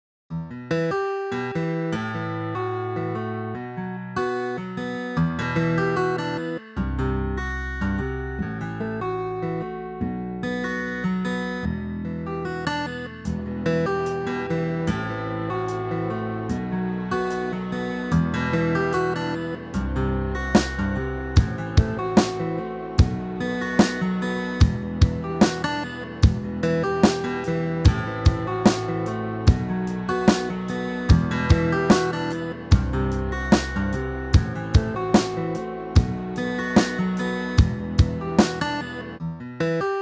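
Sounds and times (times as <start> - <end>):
fingerpicked guitar: 0.3 - 40.0.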